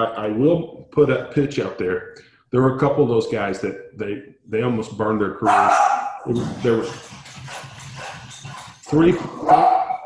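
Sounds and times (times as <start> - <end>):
dog barking: 5.4 - 6.2, 9.4 - 10.0.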